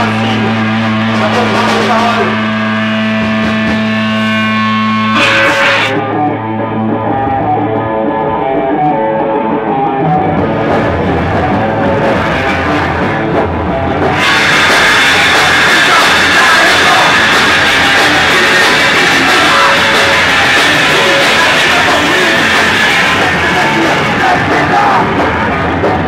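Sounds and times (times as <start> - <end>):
low droning note: 0.0 - 7.7
distorted electric guitar: 0.0 - 26.0
punk band playing: 0.0 - 26.0.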